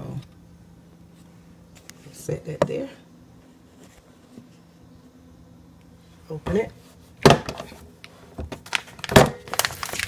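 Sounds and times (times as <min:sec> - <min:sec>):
plastic bag crinkling: 0:08.6 - 0:10.0.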